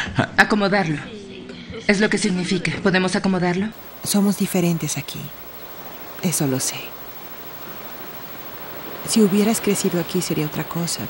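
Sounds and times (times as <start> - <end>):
outdoor ambience hiss: 3.8 - 11.0.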